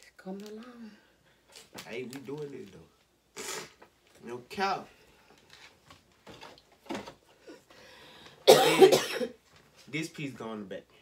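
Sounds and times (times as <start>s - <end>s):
person coughing: 8.4s - 9.4s.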